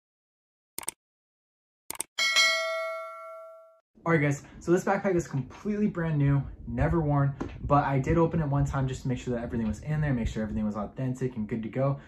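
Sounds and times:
bright bell ding: 2.2s - 3.8s.

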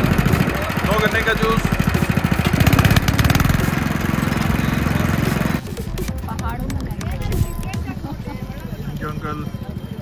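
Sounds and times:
small petrol engine running: 0.0s - 6.0s.

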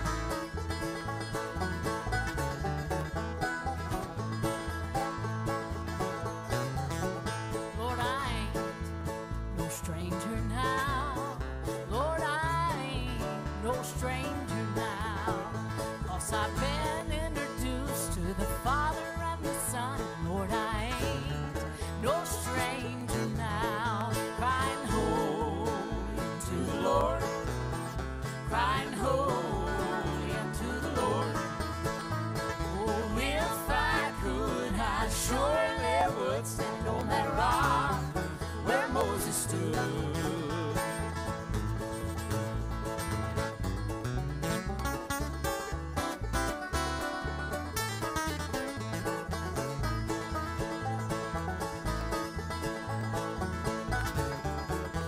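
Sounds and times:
bluegrass band playing: 0.0s - 55.0s.

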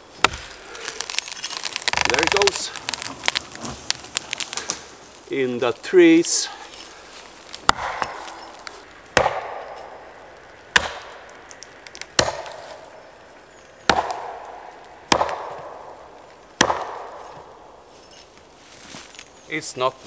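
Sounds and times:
axe chopping tree trunk: 0.2s - 4.8s, 7.4s - 10.0s, 10.7s - 12.8s, 13.8s - 17.6s.

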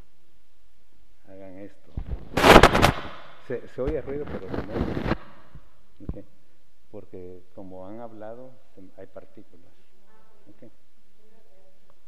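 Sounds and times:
microphone crackling pops: 1.8s - 6.3s.

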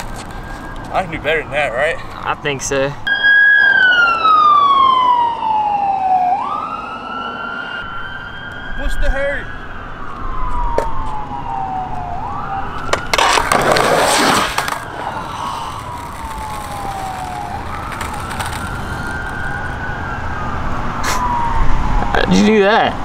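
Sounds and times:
emergency siren wailing: 0.0s - 23.0s
skateboard clattering on concrete: 12.8s - 15.0s.

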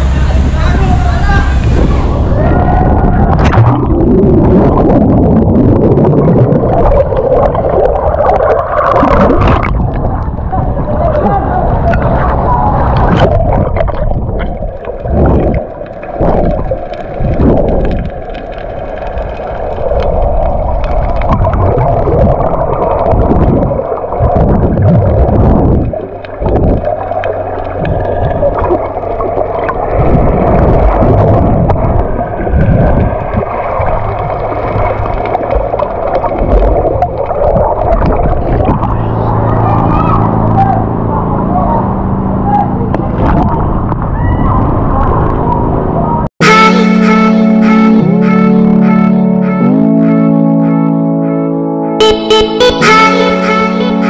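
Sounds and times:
underwater water churning: 0.0s - 39.9s
rushing water surges: 0.0s - 40.2s
low multi-tone hum: 0.0s - 54.0s.

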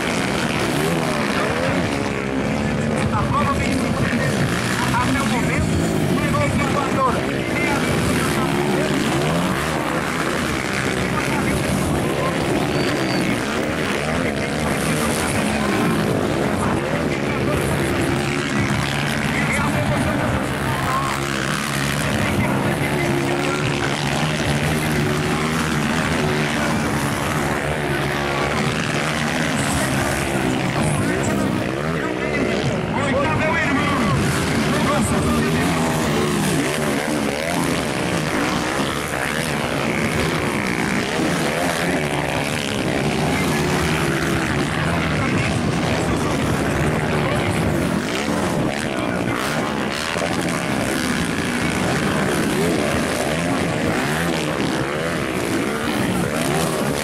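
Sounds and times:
motocross bike engines revving: 0.0s - 57.0s.

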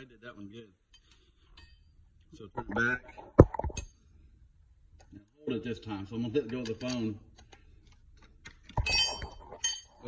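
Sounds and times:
wrench clinking on metal: 8.8s - 10.0s.

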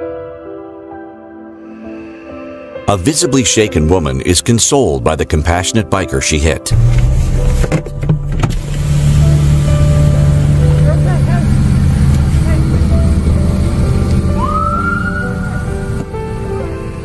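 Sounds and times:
vehicle engine idling: 6.7s - 17.0s
rising siren tone: 14.2s - 16.0s.

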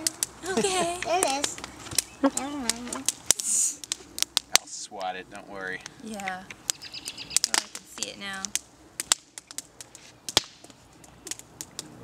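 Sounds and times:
campfire crackling and popping: 0.0s - 12.0s.

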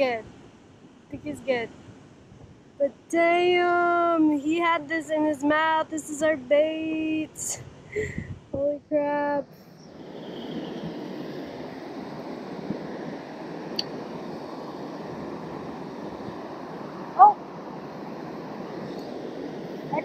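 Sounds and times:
waterfall and river rapids rushing: 10.0s - 20.0s.

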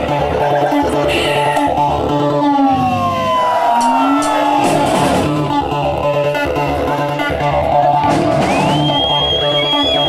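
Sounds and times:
bass line of low notes: 0.0s - 10.0s.

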